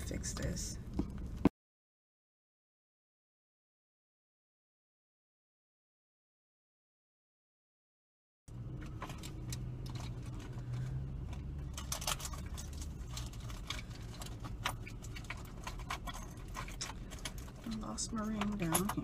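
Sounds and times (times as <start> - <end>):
low hum in car cabin: 0.0 - 1.5, 8.5 - 19.0
objects clicking and rattling: 8.5 - 19.0.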